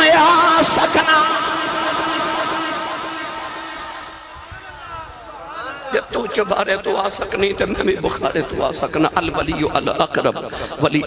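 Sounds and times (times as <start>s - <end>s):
man singing long note: 0.0s - 4.7s.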